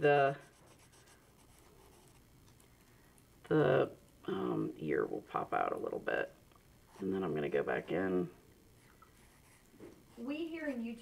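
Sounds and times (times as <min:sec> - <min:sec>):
pencil scratching on paper: 0:00.0 - 0:02.2, 0:09.2 - 0:10.8.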